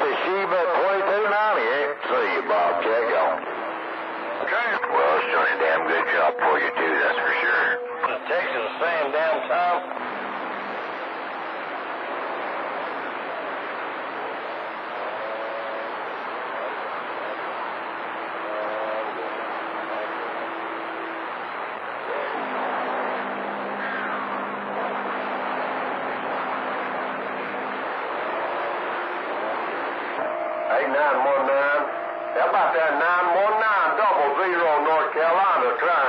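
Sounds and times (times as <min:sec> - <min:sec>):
faint wavering voices: 0:00.0 - 0:36.0
low steady tones: 0:00.0 - 0:36.0
radio static hiss: 0:00.0 - 0:36.0.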